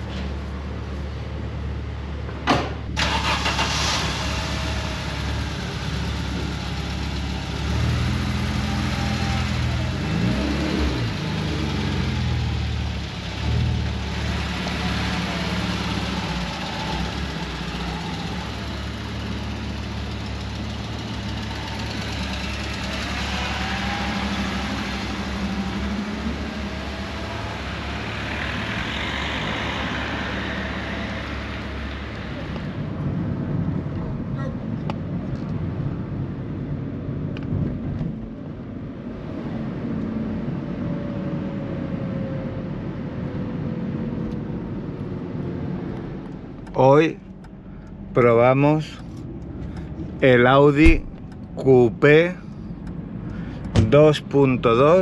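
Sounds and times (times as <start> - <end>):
car engine starting and running: 0.0 - 55.0.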